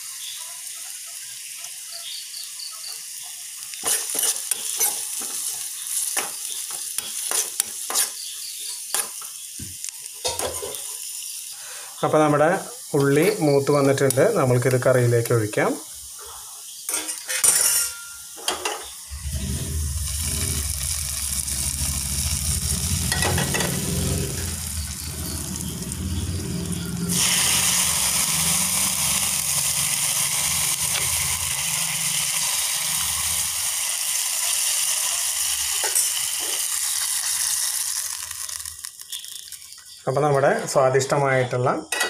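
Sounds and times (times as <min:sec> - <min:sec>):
seasoning sizzling in oil: 0:00.0 - 0:40.4.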